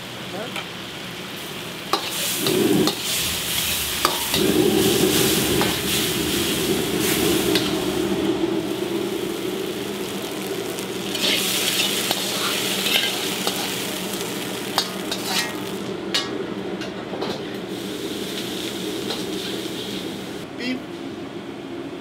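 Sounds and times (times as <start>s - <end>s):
food sizzling in a wok: 0.0s - 20.5s
steady low hum: 1.5s - 22.0s.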